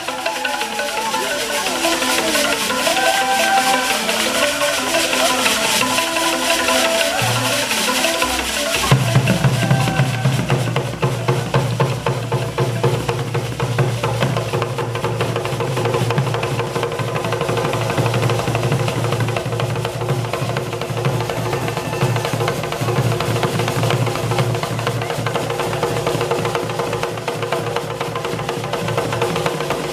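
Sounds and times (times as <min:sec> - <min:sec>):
drum ensemble: 0:00.0 - 0:29.9
log xylophone: 0:00.0 - 0:29.9.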